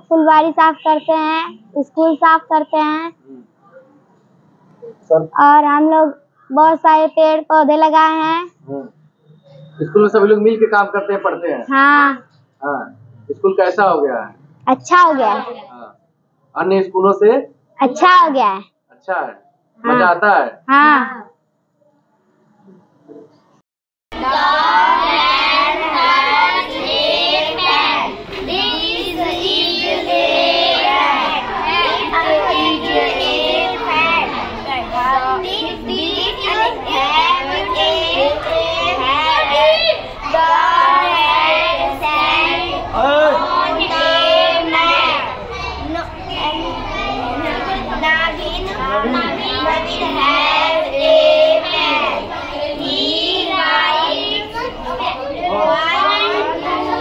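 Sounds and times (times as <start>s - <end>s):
girls singing together: 24.1s - 45.6s, 48.8s - 57.0s.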